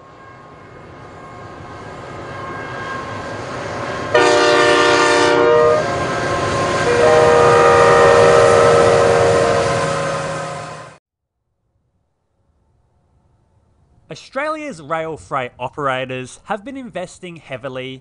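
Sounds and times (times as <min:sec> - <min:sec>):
multi-note train air horn: 0:04.1 - 0:06.1, 0:06.8 - 0:11.0.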